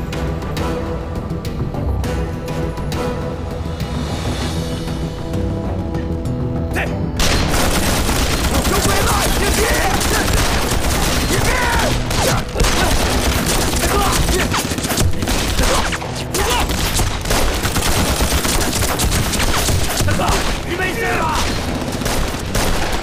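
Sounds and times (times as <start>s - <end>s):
heavy continuous rifle gunfire: 7.2s - 23.0s.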